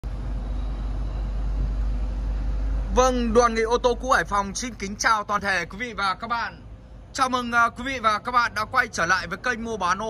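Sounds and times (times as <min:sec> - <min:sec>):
low rumble: 0:00.0 - 0:07.2.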